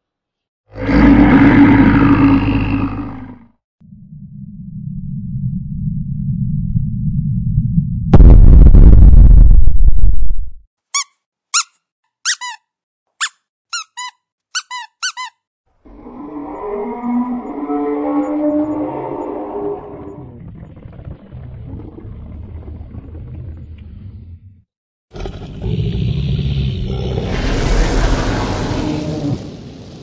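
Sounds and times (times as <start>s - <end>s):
loud rumbling roar: 0.7s - 3.5s, 25.1s - 30.0s
squeaky rubber dog toy: 10.9s - 15.4s.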